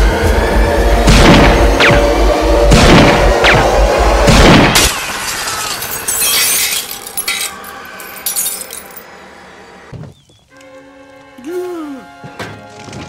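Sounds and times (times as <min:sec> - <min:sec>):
window glass shattering: 0:04.8 - 0:09.0
glass bits tinkling: 0:05.3 - 0:09.0.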